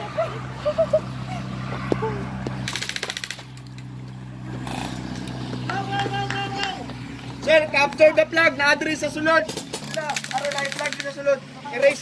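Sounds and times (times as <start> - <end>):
airsoft gun rapid burst: 2.7 - 3.4, 9.8 - 11.3.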